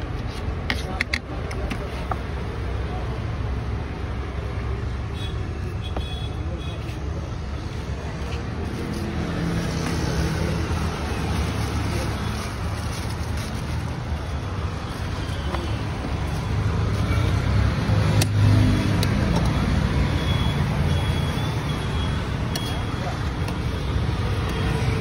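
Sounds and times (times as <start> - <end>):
road traffic rumble: 0.0 - 25.0.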